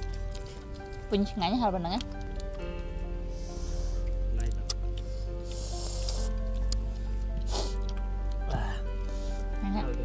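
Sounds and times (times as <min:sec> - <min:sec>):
background music with bass: 0:00.0 - 0:10.0
slurping noodle soup: 0:05.4 - 0:06.7, 0:07.4 - 0:07.9.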